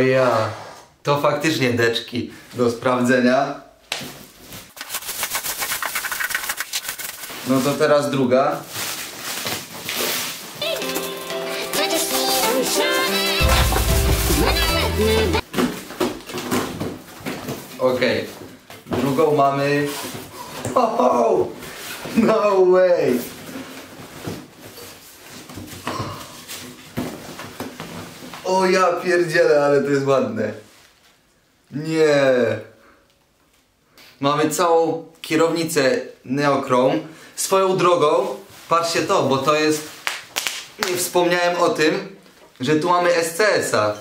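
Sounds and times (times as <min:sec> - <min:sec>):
cardboard packaging rustling: 0:04.2 - 0:17.8
plastic wrap crinkling and tearing: 0:04.6 - 0:16.5.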